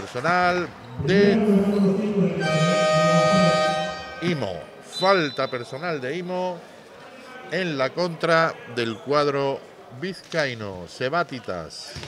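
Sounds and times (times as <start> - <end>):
synthesized chord sting: 1.0 - 4.4
man's drawn-out voice: 1.0 - 4.6.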